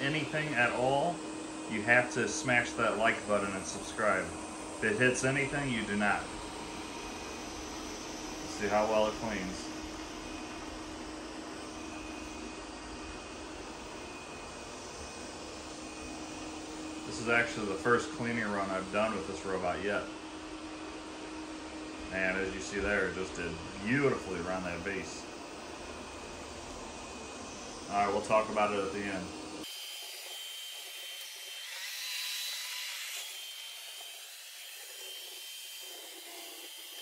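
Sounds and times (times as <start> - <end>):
robot vacuum running: 0.0 - 20.2, 20.8 - 37.0
faint high whine: 0.0 - 37.0
robot vacuum whirring: 25.9 - 37.0.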